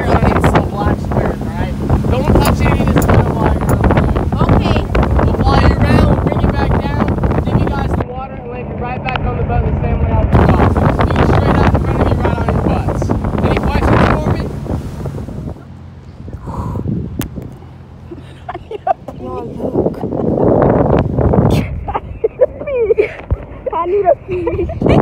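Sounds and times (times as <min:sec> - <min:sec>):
motorboat engine running: 0:00.0 - 0:25.0
wind buffeting microphone: 0:00.0 - 0:25.0.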